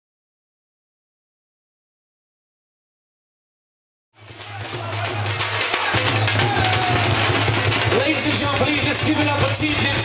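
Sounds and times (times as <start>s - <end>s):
dhol drums beating: 4.2s - 10.0s.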